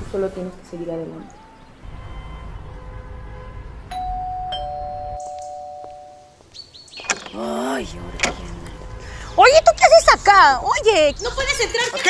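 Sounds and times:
two-tone doorbell chime: 3.9 - 6.3.

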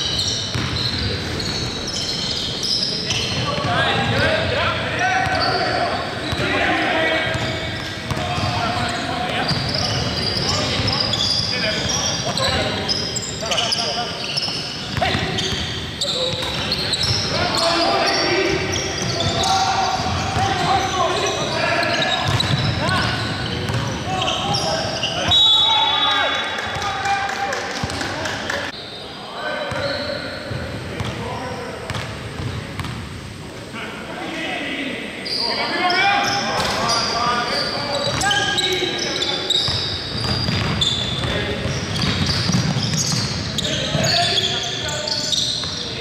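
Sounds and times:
players calling out: 0.2 - 30.7.

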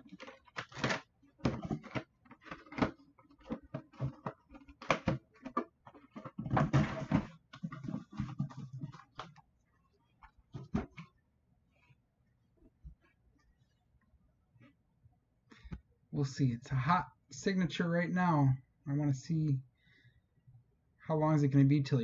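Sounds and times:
cardboard box scraping: 0.0 - 9.2
plastic helmet knocking: 0.0 - 9.4.

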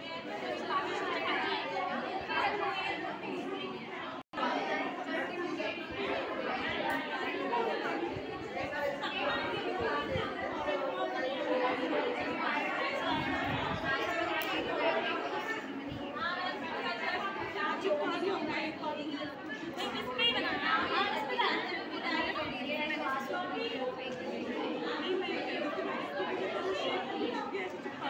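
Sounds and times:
indistinct chatter of people: 0.0 - 28.0.

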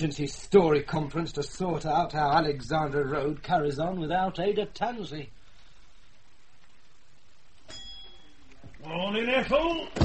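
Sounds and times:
steady low hiss: 0.0 - 10.0
shop door bell ringing: 7.7 - 8.4.

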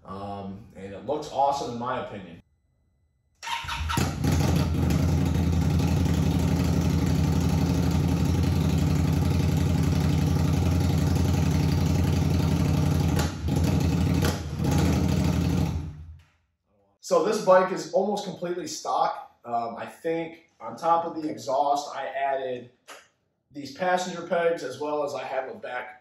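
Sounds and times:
motorcycle engine starting and idling: 3.4 - 16.2.

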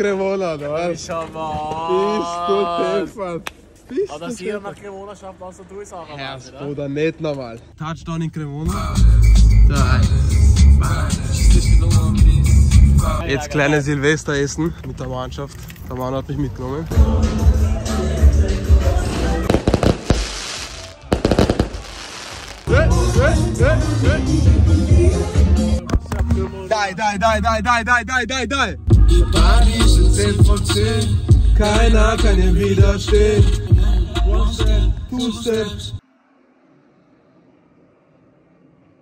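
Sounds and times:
music: 8.7 - 13.3, 16.9 - 20.2, 22.7 - 36.0
fireworks cracking: 19.0 - 22.7
fireworks hiss: 19.1 - 22.7.

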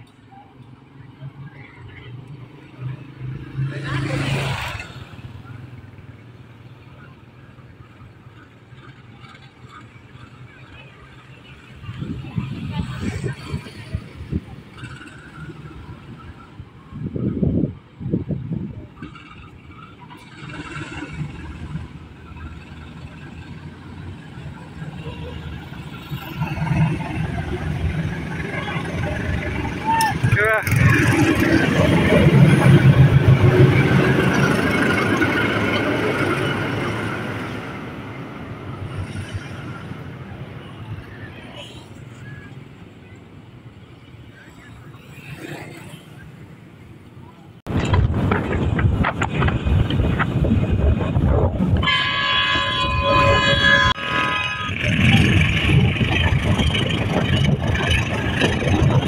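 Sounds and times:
diesel locomotive passing: 0.0 - 59.0.

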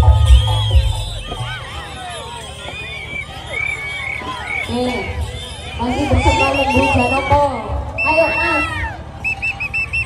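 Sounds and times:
crowd voices: 0.0 - 10.0
pea whistle blasts: 0.1 - 1.8, 8.0 - 10.0.

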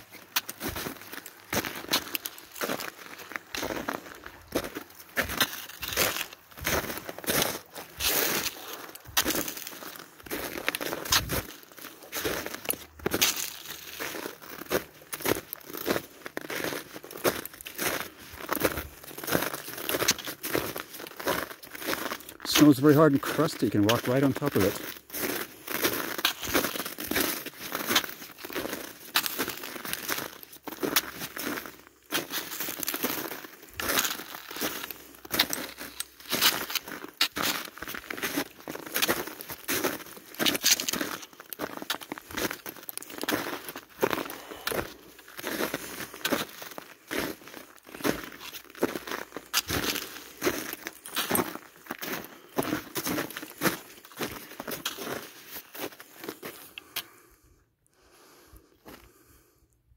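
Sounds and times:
footsteps crunching on snow: 0.0 - 57.1.

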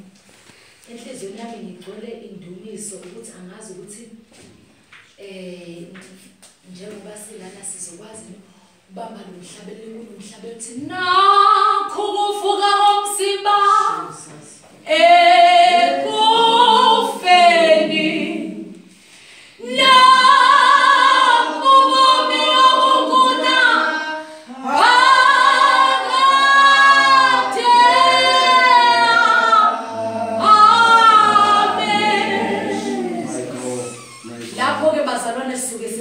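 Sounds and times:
woman singing unaccompanied: 10.8 - 18.7.

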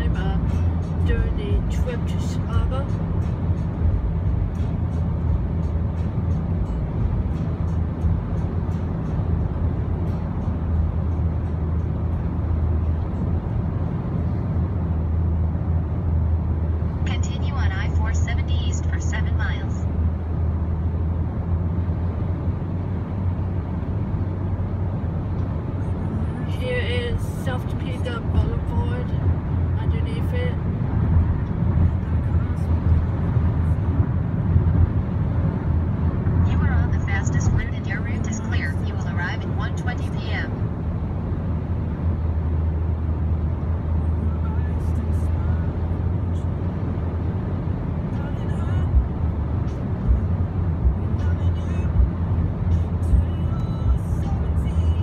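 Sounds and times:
road and engine rumble in car: 0.0 - 55.0.

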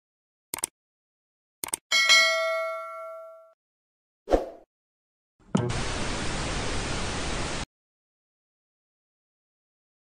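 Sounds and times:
static white noise hiss: 5.7 - 7.6.

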